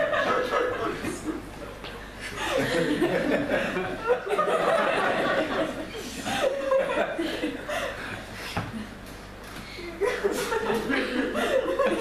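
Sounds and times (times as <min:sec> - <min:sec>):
audience laughing: 0:00.0 - 0:01.6, 0:02.3 - 0:08.0, 0:10.0 - 0:12.0.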